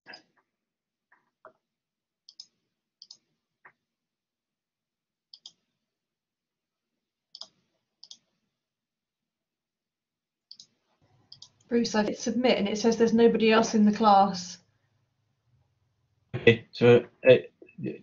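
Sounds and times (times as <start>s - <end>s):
computer clicks: 2.3s - 3.2s, 5.3s - 5.6s, 7.4s - 8.3s, 10.5s - 11.7s.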